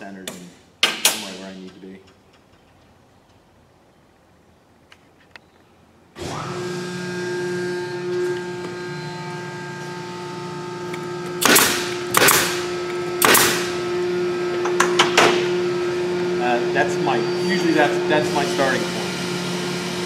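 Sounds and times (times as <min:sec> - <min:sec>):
air compressor motor humming: 0:06.2 - 0:20.0
pneumatic nailer firing: 0:10.9 - 0:15.6.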